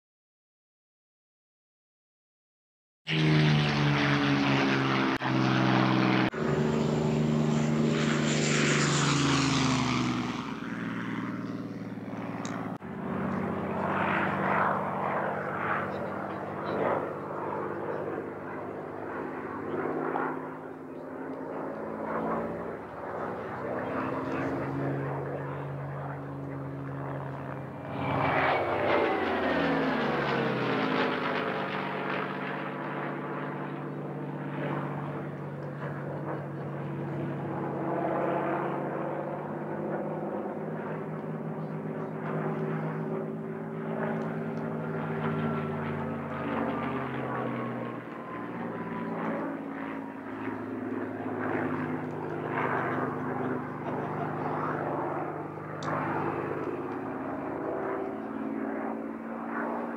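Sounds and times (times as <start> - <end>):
propeller planes passing overhead: 3.1 - 59.9.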